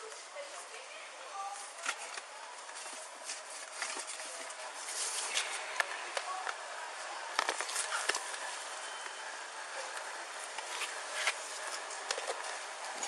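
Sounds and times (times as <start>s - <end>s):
rustling and scraping: 1.4s - 5.7s, 7.3s - 8.9s, 9.8s - 13.0s.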